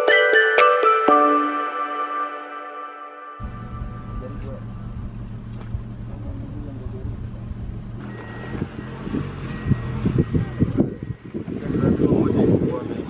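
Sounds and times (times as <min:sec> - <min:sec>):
van engine idling: 0:03.4 - 0:10.8.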